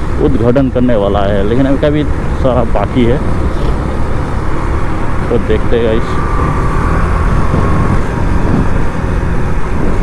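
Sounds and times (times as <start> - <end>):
traffic: 0.0 - 10.0
wind buffeting microphone: 1.9 - 10.0.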